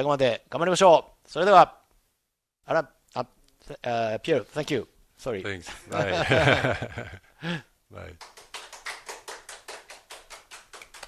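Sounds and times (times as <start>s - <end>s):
quick hand clapping: 8.2s - 11.0s.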